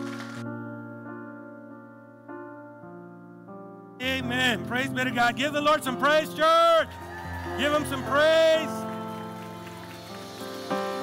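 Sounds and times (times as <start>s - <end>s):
soft background music chords: 0.0s - 11.0s.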